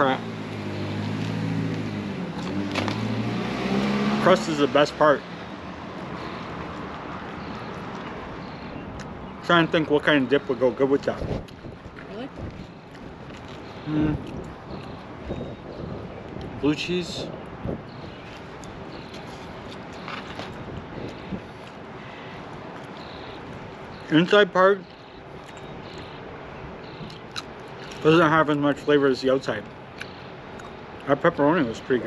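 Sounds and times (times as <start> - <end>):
distant traffic hum: 0.0 - 32.0
wind on microphone: 11.1 - 19.7.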